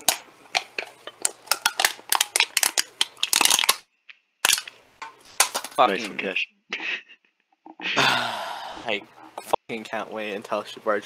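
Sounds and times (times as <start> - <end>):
metal cans being crushed: 0.0 - 3.8, 4.4 - 6.1.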